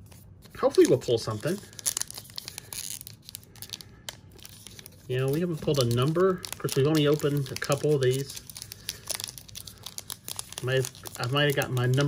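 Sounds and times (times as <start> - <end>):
wrapper crackles: 0.0 - 12.0
wrapper tearing rustle: 0.0 - 12.0.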